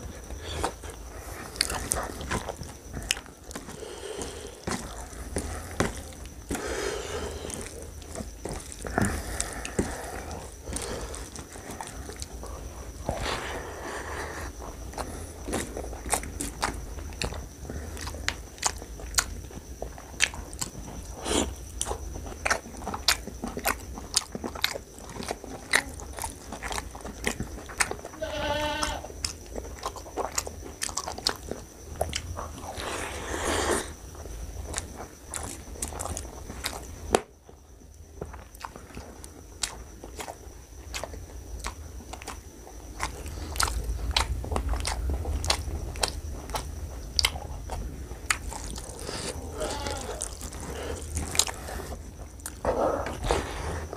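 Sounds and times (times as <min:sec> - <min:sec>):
wet chewing: 0:00.0 - 0:53.9.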